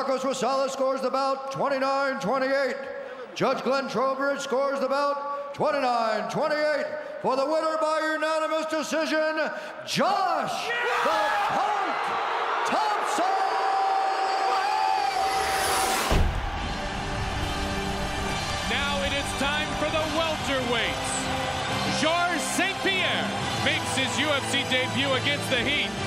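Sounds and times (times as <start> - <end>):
arena crowd noise: 9.9 - 26.0
dramatic broadcast music: 15.7 - 26.0.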